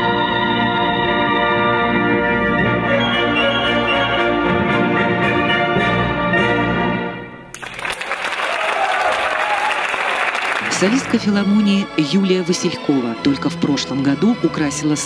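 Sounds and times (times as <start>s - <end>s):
wind band playing: 0.7s - 7.4s
audience applause: 7.5s - 11.2s.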